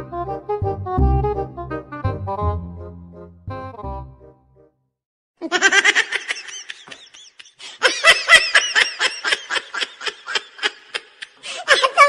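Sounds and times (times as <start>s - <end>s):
person laughing in snickers: 5.4s - 12.0s.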